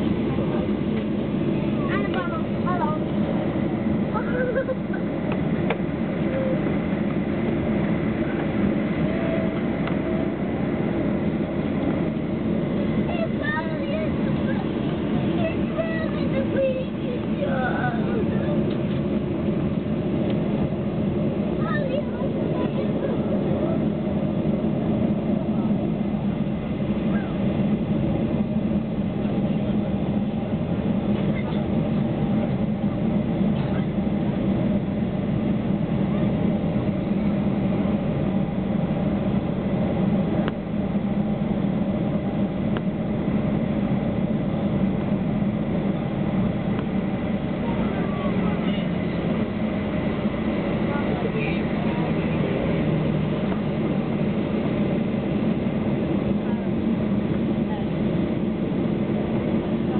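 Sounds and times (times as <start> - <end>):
airplane cabin engine hum: 0.0 - 59.9.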